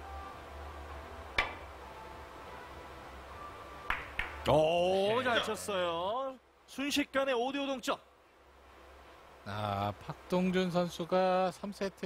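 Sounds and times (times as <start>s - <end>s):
low steady hall hum: 0.0s - 12.0s
cue striking ball click: 1.3s - 1.7s
billiard balls colliding: 1.4s - 1.7s.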